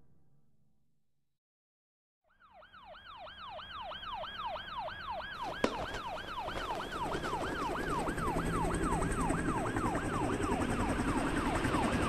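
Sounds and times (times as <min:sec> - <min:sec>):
police siren yelping: 0:02.4 - 0:12.0.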